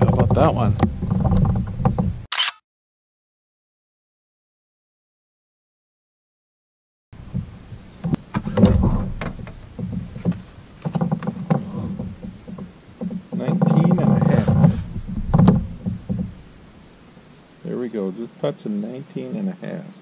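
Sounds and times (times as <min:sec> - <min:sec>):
knocks and thumps in plastic kayak: 0:00.0 - 0:02.3, 0:07.2 - 0:16.7
high insect buzz: 0:07.2 - 0:20.0.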